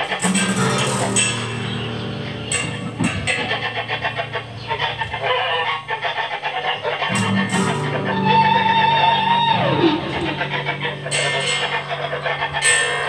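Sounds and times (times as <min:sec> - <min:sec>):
acoustic bass guitar: 0:00.0 - 0:06.2, 0:06.9 - 0:13.0
electric guitar with effects: 0:00.0 - 0:13.0
electronic noise: 0:07.1 - 0:13.0
low drone: 0:07.3 - 0:13.0.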